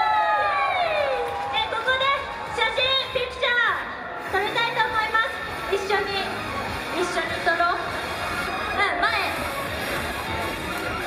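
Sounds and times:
crowd: 0:00.0 - 0:11.0.

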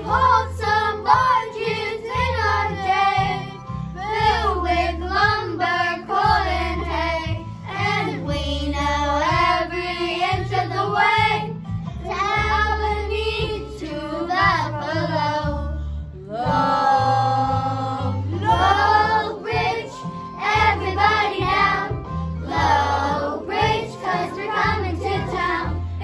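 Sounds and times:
children's choir singing: 0:00.0 - 0:11.5, 0:12.1 - 0:15.6, 0:16.3 - 0:26.0
instrumental accompaniment with bass: 0:00.0 - 0:26.0.

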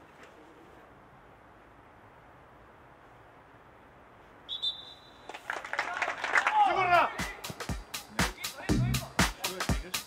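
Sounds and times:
outdoor hiss: 0:00.0 - 0:10.0
referee's whistle: 0:04.5 - 0:05.4
voices and shouts: 0:05.8 - 0:07.6.

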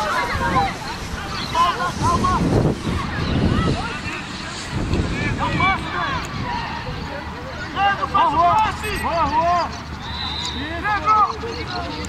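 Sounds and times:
wind rumble on microphone: 0:00.0 - 0:07.4.

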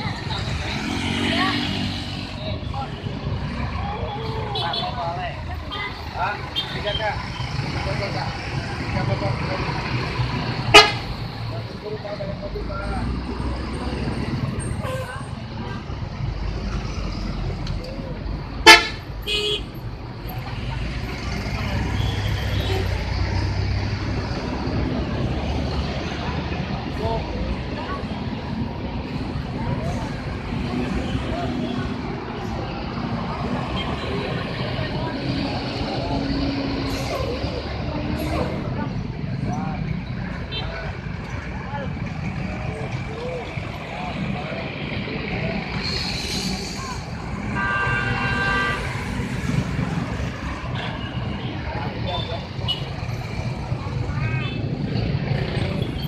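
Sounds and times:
bus engines rumbling: 0:00.0 - 0:56.0
faint voices: 0:19.9 - 0:56.0.

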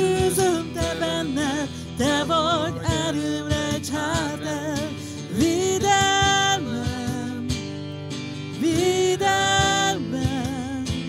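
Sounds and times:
woman singing: 0:00.0 - 0:07.8, 0:08.6 - 0:11.0
acoustic guitar: 0:00.0 - 0:11.0
cajon beat: 0:00.0 - 0:11.0.

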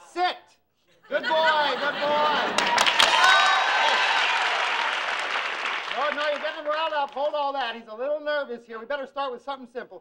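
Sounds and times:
studio audience applauding: 0:02.1 - 0:07.6.

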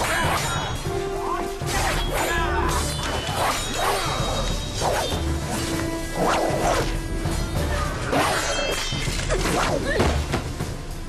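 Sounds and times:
dramatic music with drum pulse: 0:00.0 - 0:11.0
whooshing swings: 0:01.7 - 0:07.0.

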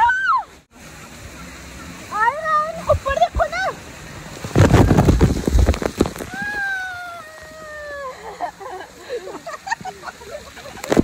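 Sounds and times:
water pouring and splashing: 0:00.0 - 0:11.0
woman's long high cry: 0:06.4 - 0:08.5.

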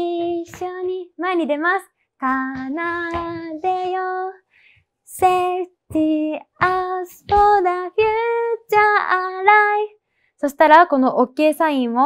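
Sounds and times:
girls singing unaccompanied: 0:00.0 - 0:04.4, 0:05.1 - 0:09.9
short breaths: 0:04.4 - 0:05.0, 0:10.0 - 0:10.4.

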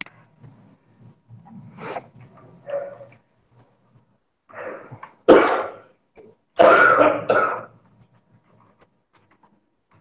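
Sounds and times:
person coughing: 0:05.3 - 0:05.9, 0:06.6 - 0:07.8.

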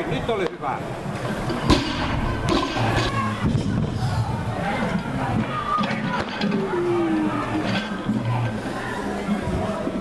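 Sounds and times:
loaded barbell clanking: 0:01.4 - 0:03.9, 0:04.8 - 0:08.6.

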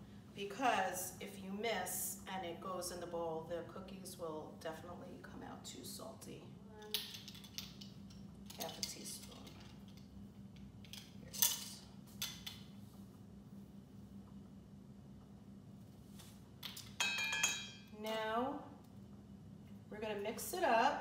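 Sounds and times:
metal spoons clinking: 0:16.7 - 0:17.9.

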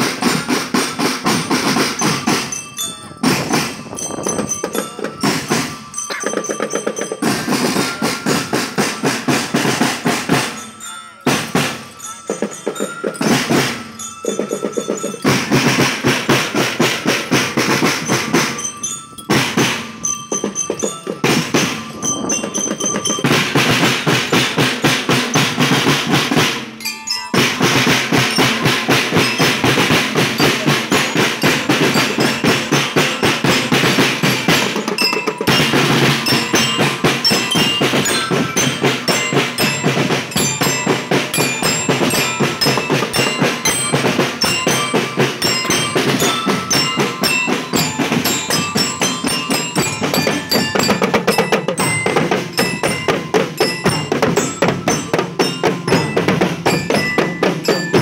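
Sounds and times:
bell lyres ringing: 0:00.0 - 0:58.0
snare drums with rolls: 0:00.0 - 0:58.0.

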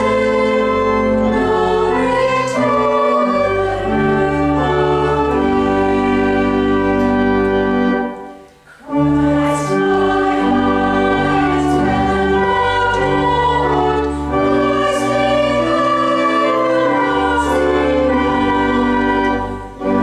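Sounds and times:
church choir singing a carol: 0:00.0 - 0:20.0.

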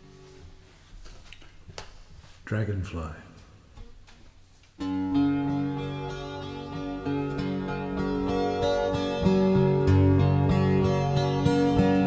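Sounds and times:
acoustic guitar: 0:04.8 - 0:12.0.

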